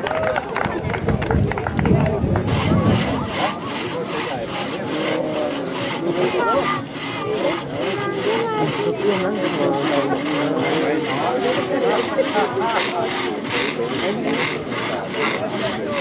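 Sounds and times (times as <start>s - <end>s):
crosscut saw cutting logs: 2.4s - 16.0s.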